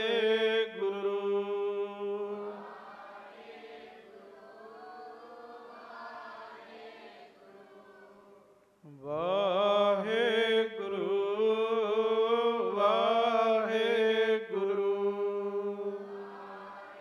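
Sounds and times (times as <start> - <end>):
man chanting devotional melody: 0.0 - 2.6, 8.9 - 16.0.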